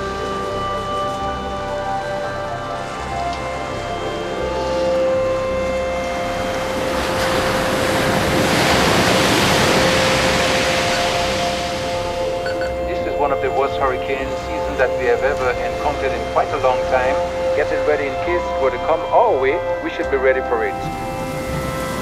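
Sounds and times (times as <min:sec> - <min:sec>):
soundtrack music of held tones: 0:00.0 - 0:22.0
surf breaking on shore: 0:06.5 - 0:17.0.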